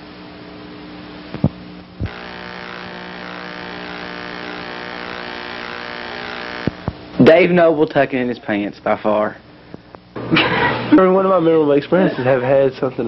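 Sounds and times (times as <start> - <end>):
tape electrical buzz and hiss: 0.0 - 13.0.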